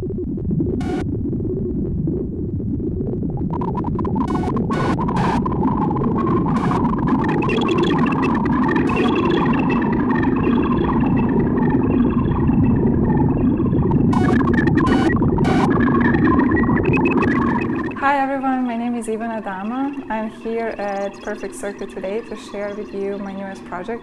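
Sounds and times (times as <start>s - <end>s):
noisy synthesizer drone: 0.0s - 24.0s.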